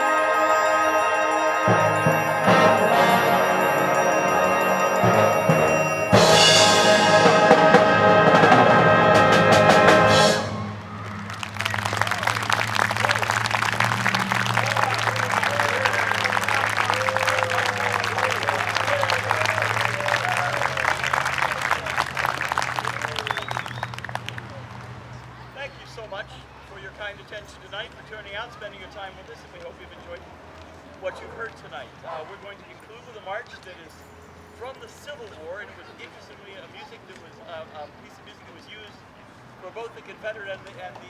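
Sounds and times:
concert band with brass playing: 0.0 - 24.2
audience applause: 10.5 - 25.1.

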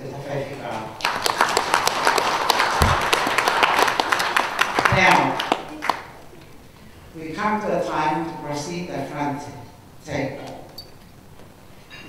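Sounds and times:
audience clapping: 1.0 - 6.3
dull low thump: 2.8 - 3.1.

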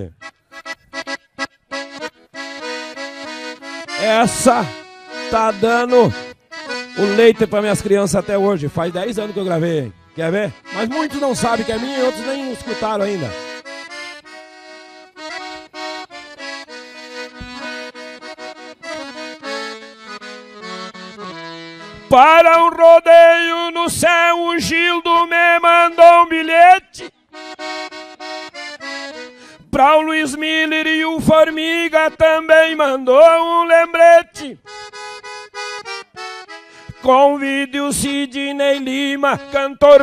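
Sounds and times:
solo accordion melody: 0.0 - 40.0
person singing: 21.9 - 27.2, 29.8 - 34.6, 37.0 - 40.0.

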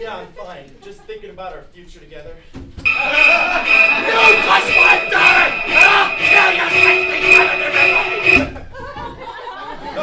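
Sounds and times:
live audience noise: 2.9 - 8.6.

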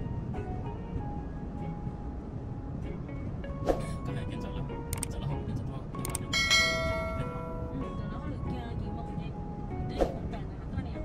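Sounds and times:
bright bell ding: 6.3 - 7.8.

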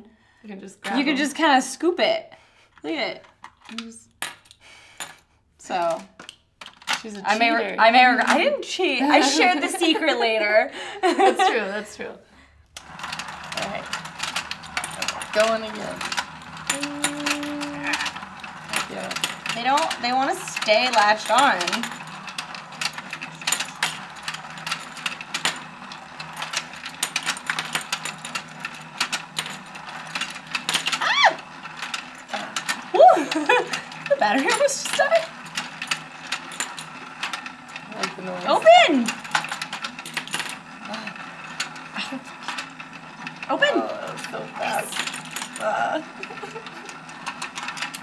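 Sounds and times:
toy game rapid clicking: 12.8 - 48.0.

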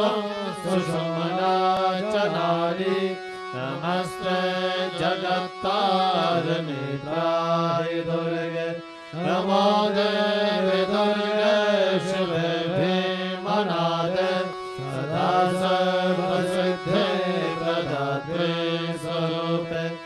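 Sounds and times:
person chanting mantra: 0.0 - 20.0.

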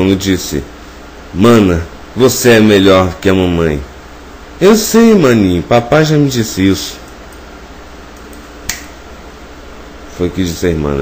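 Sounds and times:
low hum and hiss: 0.0 - 11.0
sharp click: 8.1 - 9.0.

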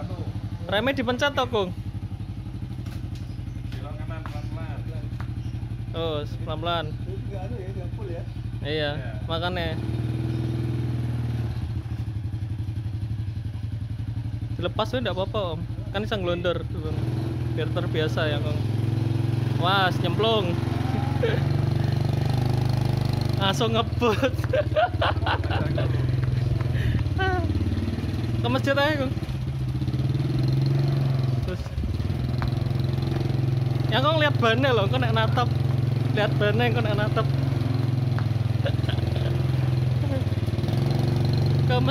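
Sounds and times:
motorcycle engine running at low revs: 0.0 - 41.9.

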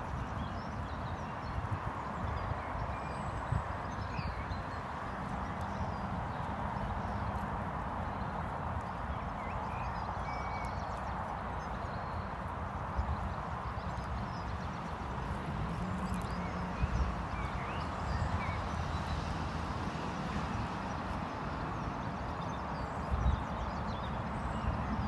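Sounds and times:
steady outdoor background rush: 0.0 - 25.0.

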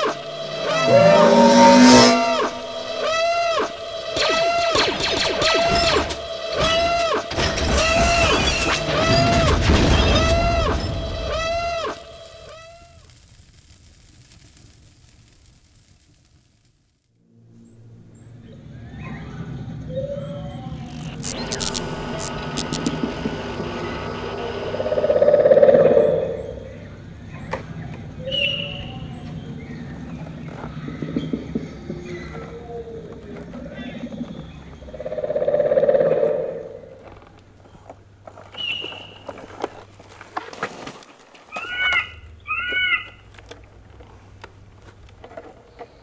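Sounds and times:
low drone with gliding tones: 0.0 - 9.1, 17.3 - 37.3
rattling animal call: 0.0 - 12.8, 20.1 - 26.8, 33.6 - 37.0, 41.5 - 43.3
glitchy crackles: 0.0 - 17.7, 20.6 - 28.2
electronic beeps: 20.7 - 26.6.

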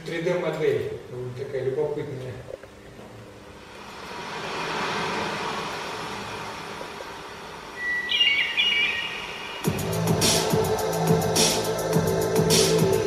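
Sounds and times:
ambient wash: 3.6 - 13.0
short high chirping tones: 7.8 - 9.9
electronic music with a beat: 7.8 - 13.0.

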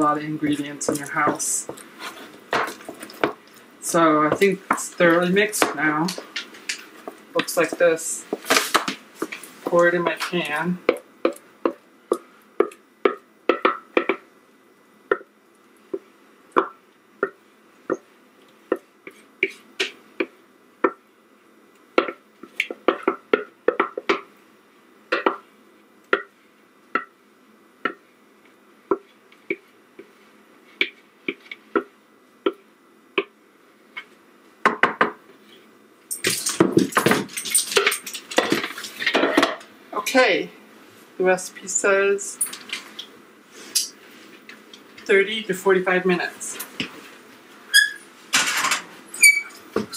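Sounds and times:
clattering noise: 48.3 - 49.0.

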